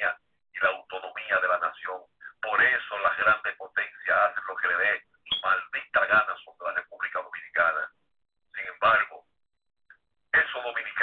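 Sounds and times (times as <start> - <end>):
person talking over telephone: 0.0 - 9.4, 10.3 - 11.0.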